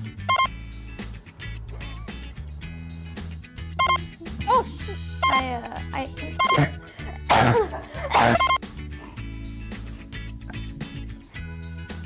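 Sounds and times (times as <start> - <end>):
music with low sustained notes: 0.0 - 12.0
person coughing: 6.4 - 9.2.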